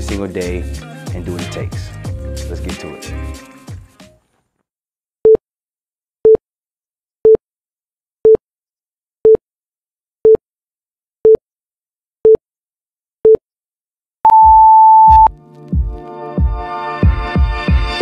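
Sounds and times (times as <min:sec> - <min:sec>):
long high beep: 0:14.3 - 0:15.3
short timer beeps: 0:14.3 - 0:15.3.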